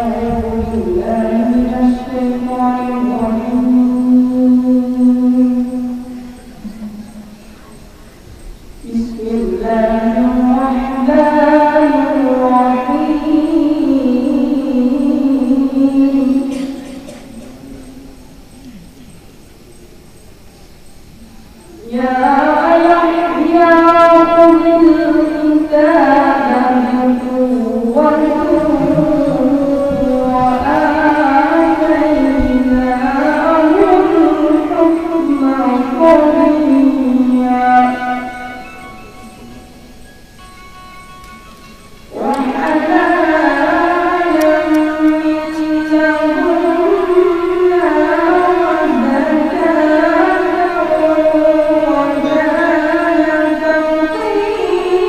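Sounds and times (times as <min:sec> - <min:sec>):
person singing a long note: 0:00.0 - 0:19.2, 0:21.2 - 0:55.0
boy chanting melodic line: 0:21.4 - 0:40.0, 0:41.6 - 0:55.0.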